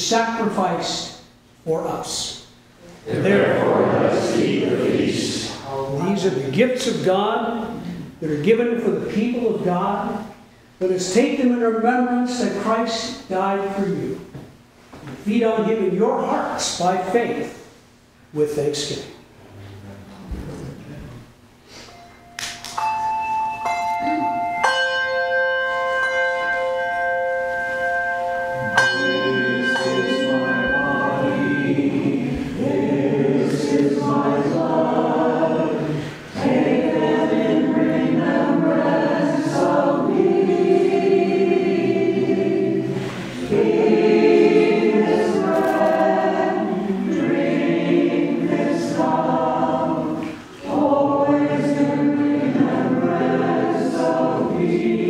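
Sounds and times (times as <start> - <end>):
group singing a hymn: 3.0 - 6.7, 26.6 - 55.0
held instrumental notes: 21.8 - 55.0.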